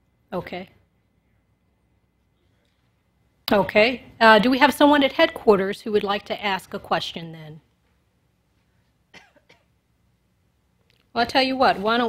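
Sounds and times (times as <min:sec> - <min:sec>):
faint cough: 0:09.1 - 0:09.8.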